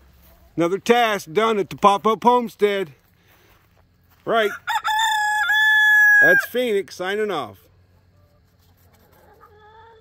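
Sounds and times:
chickens clucking: 0.0s - 2.5s, 6.1s - 10.0s.

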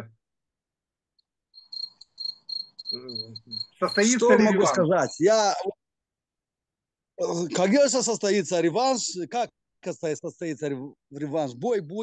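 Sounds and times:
cricket chirping: 1.5s - 5.7s
man talking: 3.0s - 5.8s, 7.2s - 12.0s.

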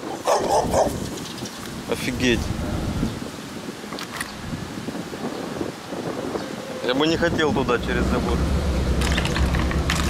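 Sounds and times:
large dogs barking: 0.0s - 1.0s.

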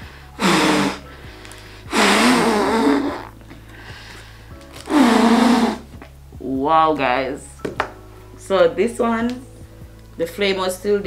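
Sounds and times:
breathy huffs through cloth mask: 0.0s - 6.0s
quiet background music: 0.0s - 11.0s.

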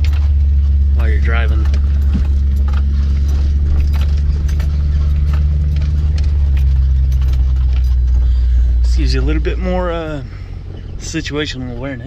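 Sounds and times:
clicks and rattles: 0.0s - 9.4s
car engine drone: 0.0s - 12.0s.

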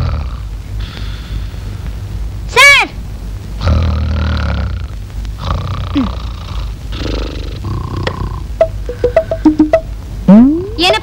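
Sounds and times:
man snoring: 0.0s - 0.5s, 3.6s - 8.4s.

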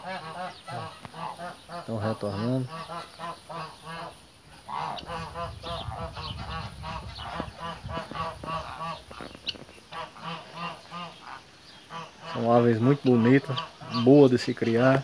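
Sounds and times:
geese honking: 0.0s - 15.0s
low rumble: 5.0s - 9.2s.

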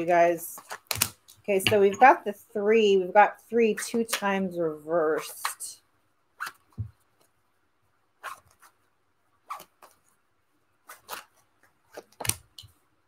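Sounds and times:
cards slapping while shuffled: 0.6s - 1.8s, 9.4s - 10.0s, 10.8s - 12.8s.

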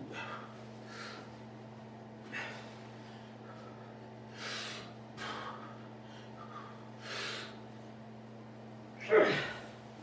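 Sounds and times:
man breathing hard: 0.0s - 1.4s, 2.2s - 7.6s
faint steady hum: 0.0s - 10.0s.

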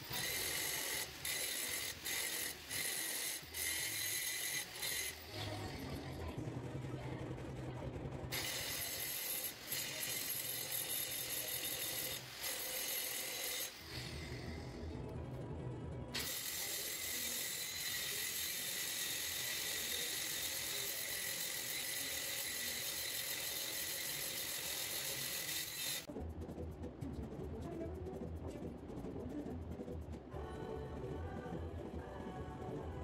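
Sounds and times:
angle grinder grinding steel: 0.0s - 6.4s, 8.3s - 14.8s, 16.2s - 26.1s.

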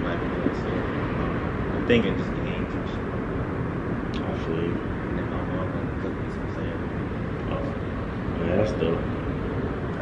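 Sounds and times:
low outdoor background noise: 0.0s - 10.0s.

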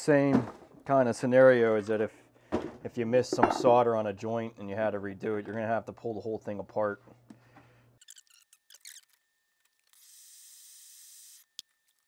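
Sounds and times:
brush squeaks and scratches: 8.0s - 9.2s.

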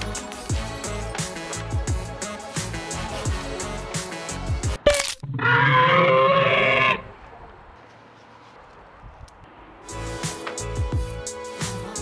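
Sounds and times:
background music: 0.0s - 5.2s, 9.6s - 12.0s
wavering bleat-like call: 5.2s - 7.1s.

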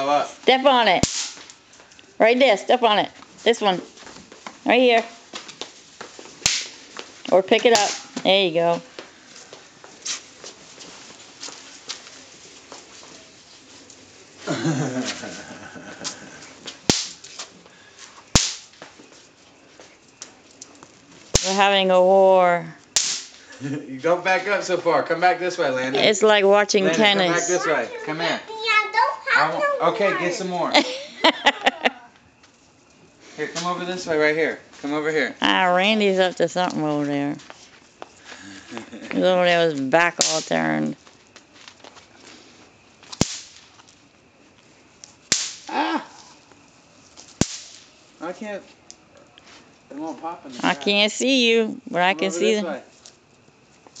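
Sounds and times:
snap poppers cracking on concrete: 0.9s - 2.1s, 4.4s - 8.3s, 16.0s - 17.5s, 18.3s - 19.0s, 20.2s - 21.8s, 22.9s - 23.6s, 40.1s - 42.0s, 43.0s - 44.0s, 45.0s - 46.6s, 47.2s - 48.0s
bang snap cracking: 1.0s - 1.6s, 6.4s - 6.8s, 7.7s - 8.3s, 16.8s - 17.3s, 18.3s - 18.9s, 21.3s - 21.6s, 22.9s - 23.5s, 40.2s - 40.6s, 43.1s - 43.8s, 45.3s - 45.7s, 47.3s - 47.9s.

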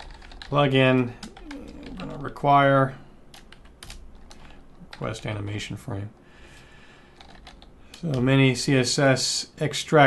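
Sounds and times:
computer keyboard keystrokes: 0.0s - 2.2s, 3.3s - 5.1s, 7.2s - 8.2s.

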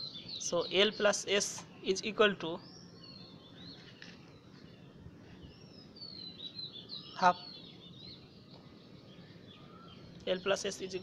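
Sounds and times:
faint bird chirps: 0.0s - 11.0s
faint low hum: 0.0s - 11.0s.

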